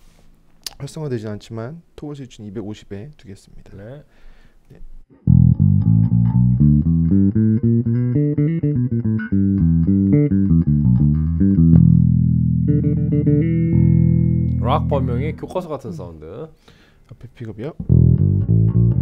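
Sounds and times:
electric bass plucked notes: 0:05.2 - 0:16.0, 0:17.8 - 0:19.0.

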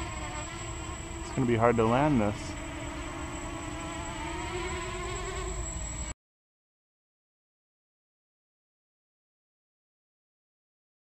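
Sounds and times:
quadcopter propellers buzzing: 0:00.0 - 0:06.1.

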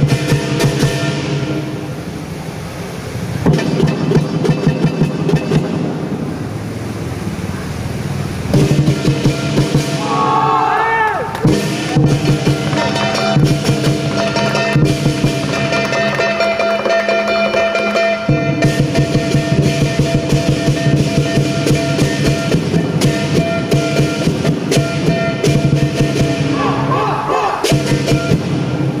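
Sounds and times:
large drum beaten fast: 0:00.0 - 0:01.7, 0:08.5 - 0:10.1, 0:11.4 - 0:26.9, 0:27.5 - 0:29.0
cymbals clashing: 0:00.0 - 0:02.3, 0:08.5 - 0:10.5, 0:11.4 - 0:29.0
gong: 0:11.5 - 0:26.9, 0:27.6 - 0:29.0.

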